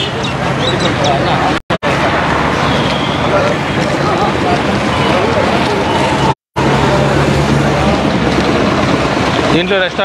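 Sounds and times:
loud outdoor noise: 0.0 - 10.0.

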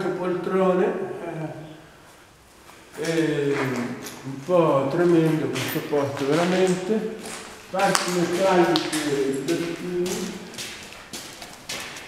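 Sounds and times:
footsteps on hard floor: 5.6 - 12.0.

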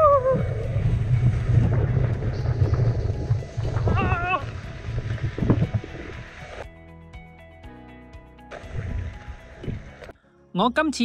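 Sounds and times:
wind buffeting microphone: 0.0 - 6.6.

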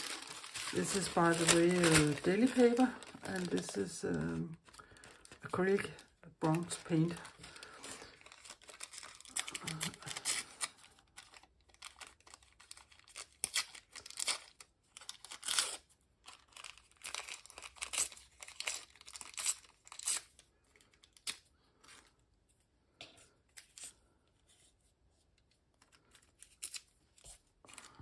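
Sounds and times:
paper ripping: 0.0 - 4.4
paper rustling: 0.0 - 13.2.

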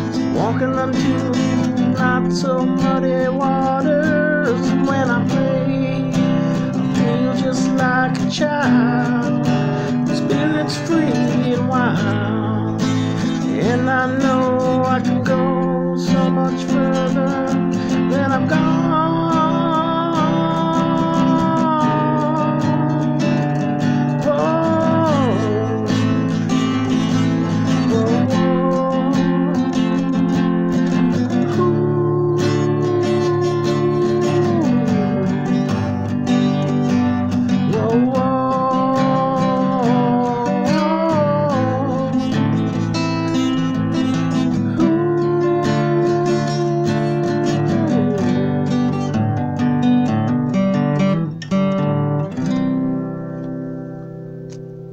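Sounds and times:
person singing wordless melody: 0.0 - 53.2
acoustic guitar strumming: 0.0 - 54.9.

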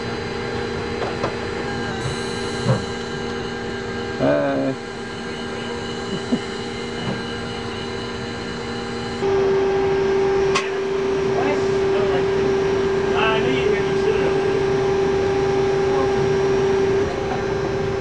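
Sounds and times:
machinery and ventilation hum: 0.0 - 18.0.

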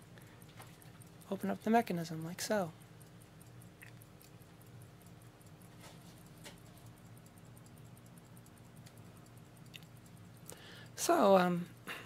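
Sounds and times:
faint pocket watch ticking: 0.0 - 12.0.

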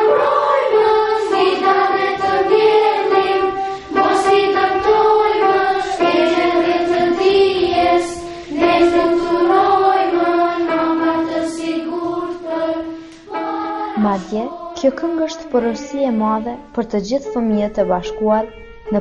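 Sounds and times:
children's choir singing: 0.0 - 16.7.

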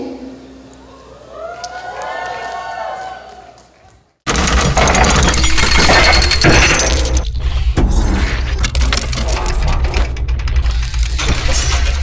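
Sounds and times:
rattling mechanical effects: 4.3 - 12.0.

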